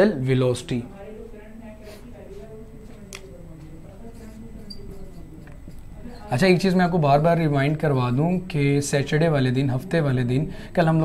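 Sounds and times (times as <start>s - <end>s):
marker writing on whiteboard: 3.6s - 6.3s
marker squeak: 4.6s - 5.2s.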